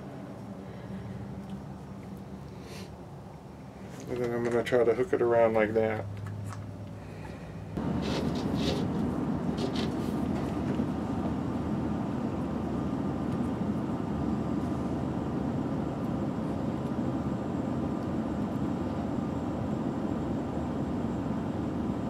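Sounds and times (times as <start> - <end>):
machinery rumbling: 0.0 - 22.0.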